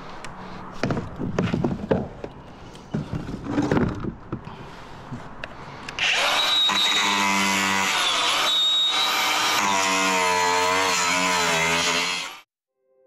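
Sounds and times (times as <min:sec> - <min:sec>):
angle grinder cutting: 0:06.0 - 0:12.5.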